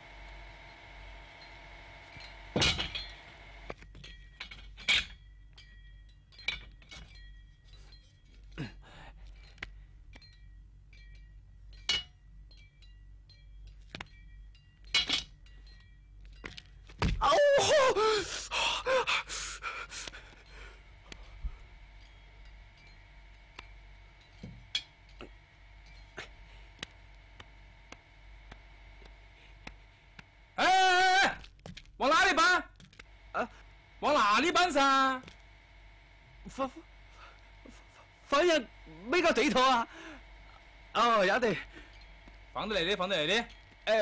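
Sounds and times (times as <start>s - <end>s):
man gasping and groaning: 8.5s - 9.3s, 17.2s - 20.4s.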